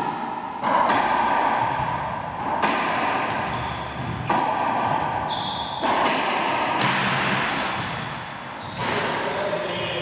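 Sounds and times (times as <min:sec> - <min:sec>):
squash court background noise: 0:00.0 - 0:10.0.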